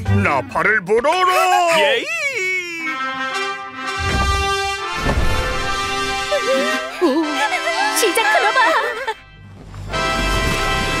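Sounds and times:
cartoon trumpet fanfare: 0:02.6 - 0:09.2, 0:09.9 - 0:11.0.

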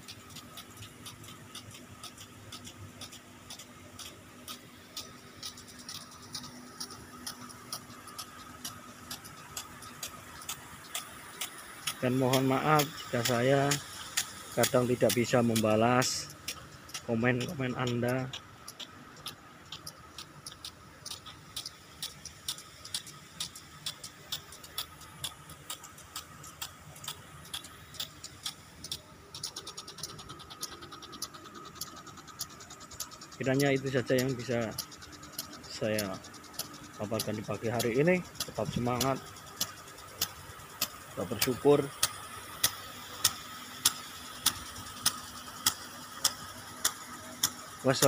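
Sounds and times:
lawn sprinklers ticking: 0:00.0 - 0:48.0
steady background hum: 0:00.0 - 0:48.0.

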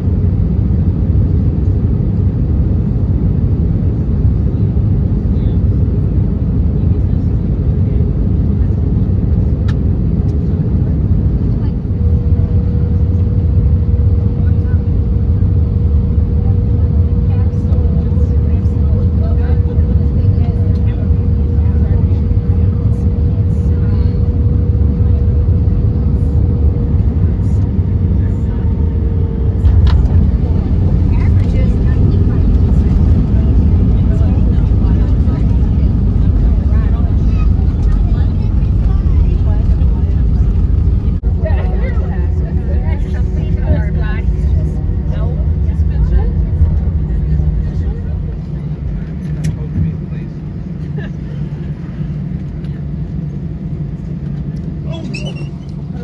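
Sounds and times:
aircraft engines and airflow rumble: 0:00.0 - 0:56.0.

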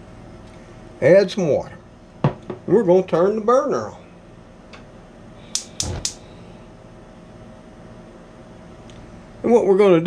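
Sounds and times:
spark igniter clicking: 0:05.5 - 0:06.2
burner catching thump: 0:05.6 - 0:06.2.

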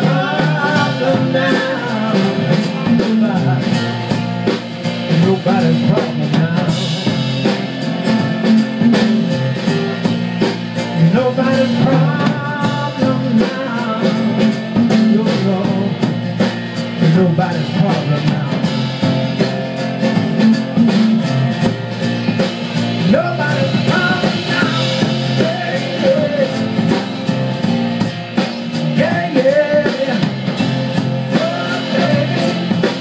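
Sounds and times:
person singing: 0:00.0 - 0:03.9, 0:05.1 - 0:07.3, 0:11.0 - 0:16.1, 0:17.0 - 0:18.8, 0:23.0 - 0:27.0, 0:28.9 - 0:30.5, 0:31.2 - 0:33.0
drum kit beat: 0:00.0 - 0:33.0
electric bass: 0:00.0 - 0:33.0
strummed acoustic guitar: 0:00.0 - 0:33.0.

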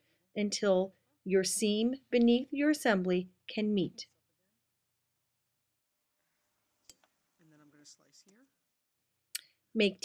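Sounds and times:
faint voice: 0:07.4 - 0:08.6.

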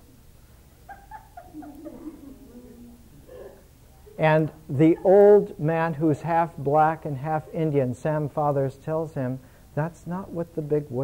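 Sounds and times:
lower laugh: 0:00.8 - 0:03.6
faint high-pitched laughter: 0:00.8 - 0:04.2.

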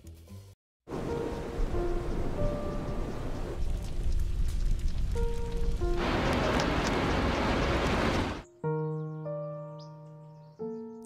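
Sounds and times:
rain: 0:00.9 - 0:08.4
slow music notes: 0:00.9 - 0:11.0
wind: 0:00.9 - 0:11.0.

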